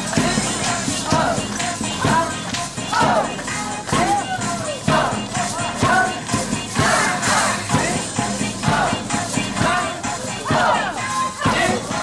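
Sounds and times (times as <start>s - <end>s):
hand percussion beating a rhythm: 0.0s - 12.0s
many voices raised together: 0.0s - 12.0s
music: 0.0s - 12.0s.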